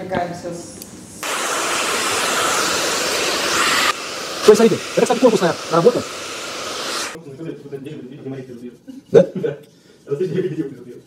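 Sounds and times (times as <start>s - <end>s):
hair dryer blowing air: 1.2s - 7.2s.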